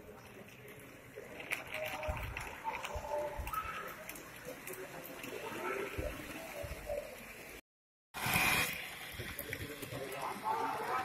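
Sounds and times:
indistinct chatter of people: 0.0 - 7.6, 9.1 - 11.0.

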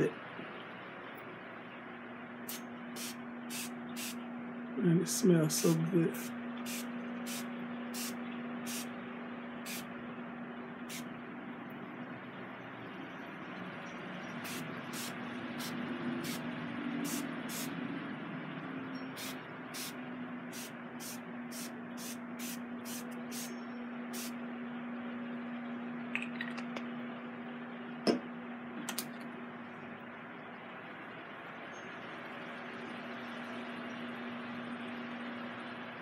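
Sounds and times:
steady low hum: 0.0 - 36.0
spray bottle hissing bursts: 3.0 - 4.2, 6.7 - 8.9, 17.1 - 17.7, 19.2 - 20.0, 20.6 - 23.5.

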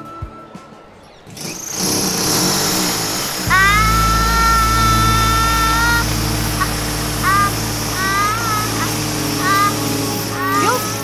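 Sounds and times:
electric drill drilling into wall: 1.3 - 11.0.

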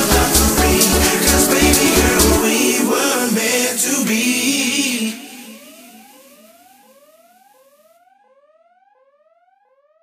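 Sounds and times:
gliding synth tone: 0.0 - 6.4.

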